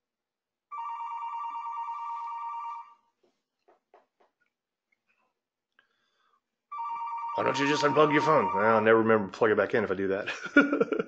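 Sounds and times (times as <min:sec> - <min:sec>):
telephone ringing: 0:00.7 - 0:03.0, 0:06.7 - 0:09.1.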